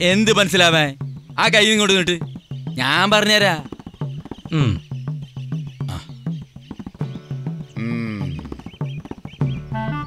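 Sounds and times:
percussive ticking: 0:00.0 - 0:09.8.

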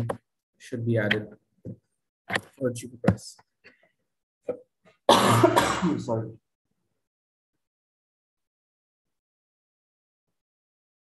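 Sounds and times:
man coughing: 0:05.1 - 0:06.2.

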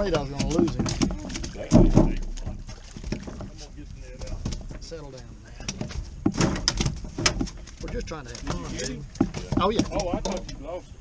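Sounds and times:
water splashing beside boat: 0:00.0 - 0:11.0.

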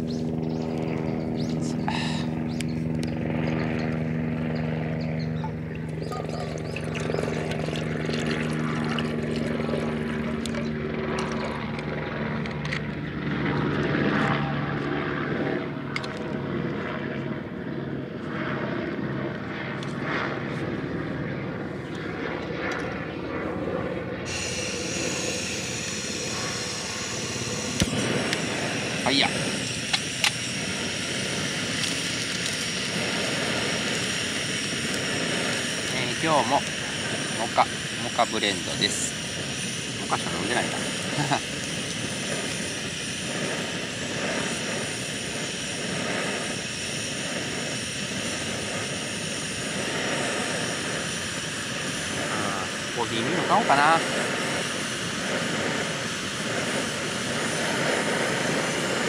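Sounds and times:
low engine drone: 0:00.0 - 0:59.0
steady high hiss: 0:24.2 - 0:59.0.

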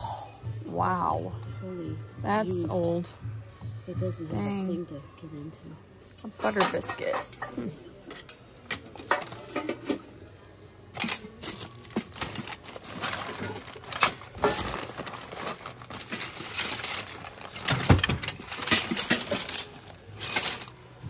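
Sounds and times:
metal tins clinking: 0:11.0 - 0:20.8
plastic bags crinkling: 0:11.3 - 0:21.0.

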